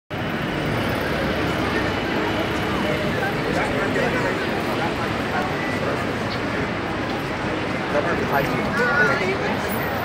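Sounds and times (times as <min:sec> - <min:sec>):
road traffic: 0:00.1 - 0:10.0
voices of passers-by: 0:00.1 - 0:10.0.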